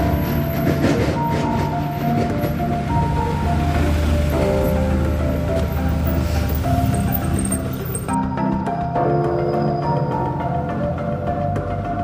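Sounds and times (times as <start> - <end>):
music with sustained notes: 0.0 - 12.0.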